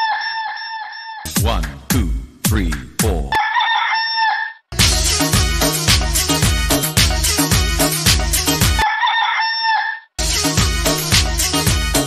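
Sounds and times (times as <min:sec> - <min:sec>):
rooster crow sample: 0:00.0 - 0:01.3, 0:03.3 - 0:04.7, 0:08.8 - 0:10.1
dance beat: 0:01.3 - 0:03.4, 0:04.8 - 0:08.8, 0:10.2 - 0:12.0.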